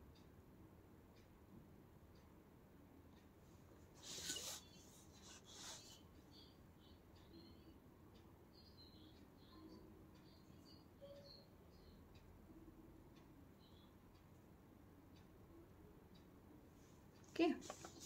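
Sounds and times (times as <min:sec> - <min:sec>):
faint high chirps: 0:04.0 - 0:14.3.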